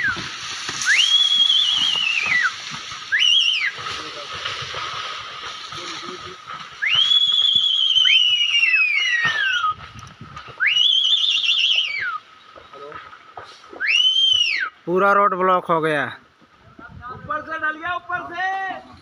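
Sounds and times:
high whistles: 0.0s - 3.8s, 6.8s - 9.9s, 10.5s - 12.4s, 13.7s - 14.8s.

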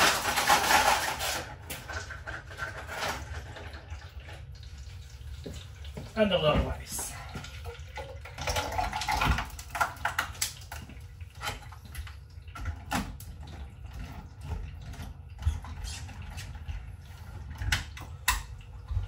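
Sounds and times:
liquid running into plastic bottle: 6.7s - 19.0s.

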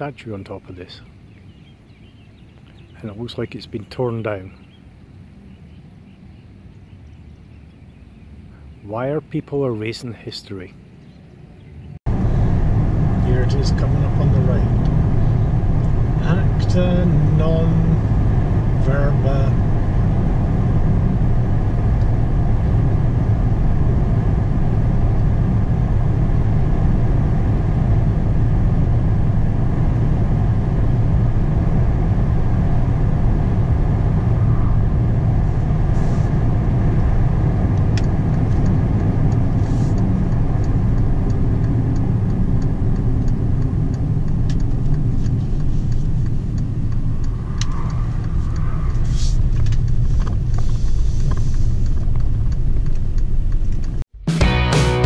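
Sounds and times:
car road noise rumble: 0.0s - 54.2s
light regular ticking: 36.6s - 54.1s.

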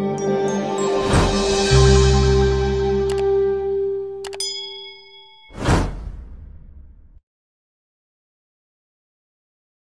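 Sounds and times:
music: 0.0s - 5.8s
mouse clicks: 4.2s - 4.4s
bell-like ding: 4.2s - 5.6s.

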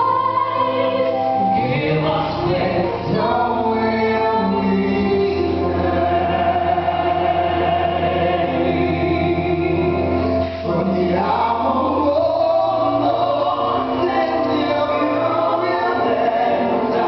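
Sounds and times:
instrumental accompaniment: 0.0s - 17.0s
man singing ballad: 1.4s - 6.9s, 7.6s - 17.0s.

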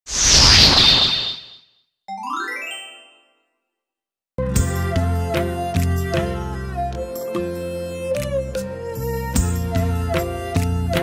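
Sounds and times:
whoosh with whistling tone: 0.1s - 1.7s.

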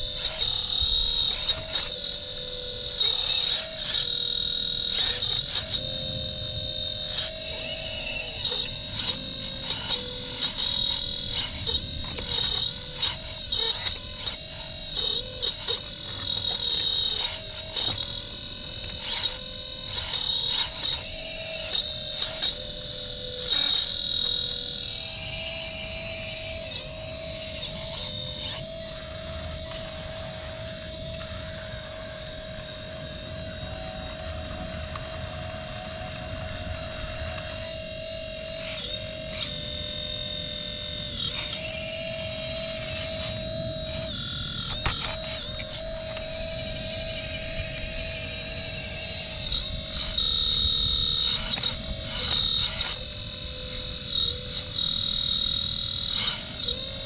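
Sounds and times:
hydraulic pump whining: 0.0s - 57.0s.

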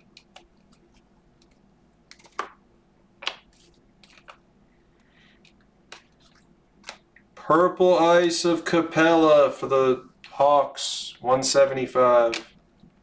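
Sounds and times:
cards snapping against each other: 1.4s - 2.6s, 3.2s - 4.4s.

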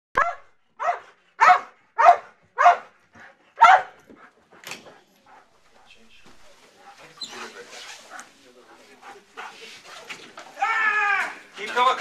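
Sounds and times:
dog barking: 0.2s - 3.0s, 3.6s - 4.0s.

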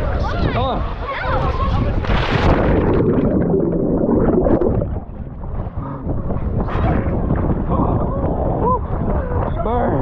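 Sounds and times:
muffled underwater rumble: 1.4s - 10.0s
splash into pool: 2.0s - 3.4s.

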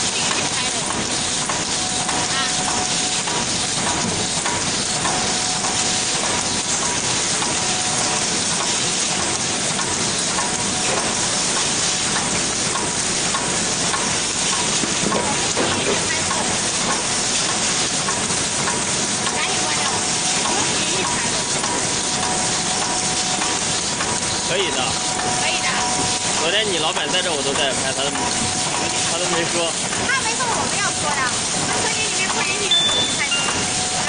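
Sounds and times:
machine clatter and hiss: 0.0s - 34.0s.

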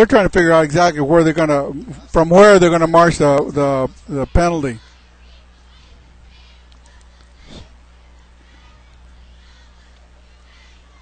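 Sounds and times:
low electrical hum: 0.0s - 11.0s
faint distant shouts: 1.7s - 11.0s.

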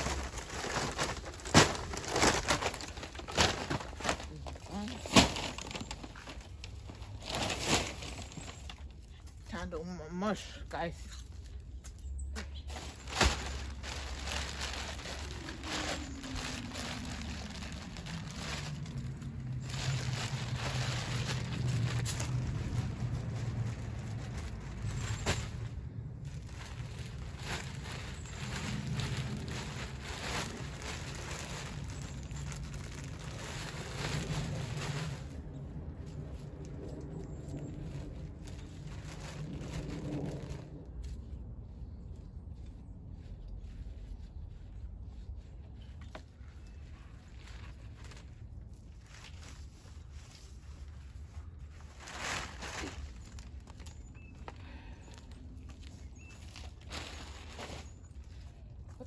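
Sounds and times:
mulch rustling and scattering: 0.0s - 8.9s, 12.6s - 35.3s.

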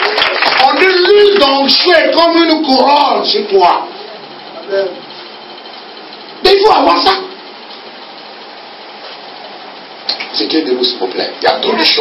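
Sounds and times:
room tone hiss: 0.0s - 12.0s
person speaking: 11.3s - 12.0s.

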